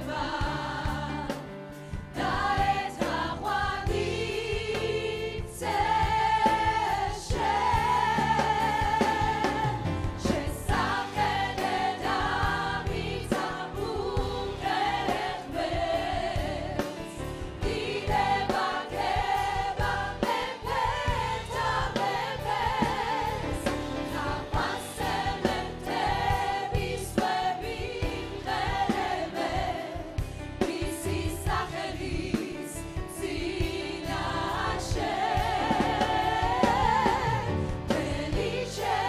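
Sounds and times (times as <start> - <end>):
choir singing worship song: 0.0 - 39.0.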